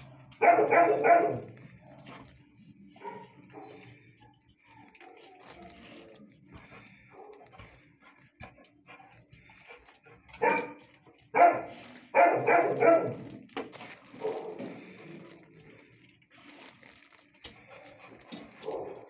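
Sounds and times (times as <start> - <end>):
dogs barking and whining: 0.1 - 16.0, 16.6 - 19.0.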